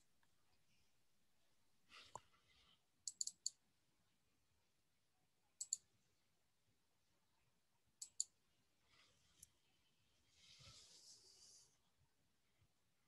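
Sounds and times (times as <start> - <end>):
computer mouse clicking: 3.1 - 3.6, 5.6 - 5.9, 8.0 - 8.4.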